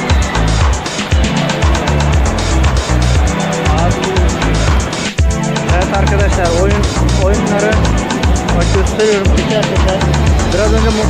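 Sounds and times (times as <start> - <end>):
music with heavy beat: 0.0 - 11.0.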